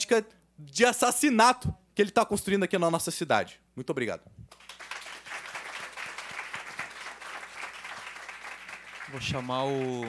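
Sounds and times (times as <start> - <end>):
audience applauding: 4.5 - 10.0.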